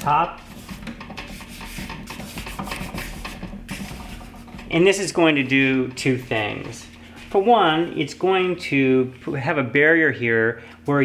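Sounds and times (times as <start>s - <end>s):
hands rubbing tape down: 0.0s - 4.7s.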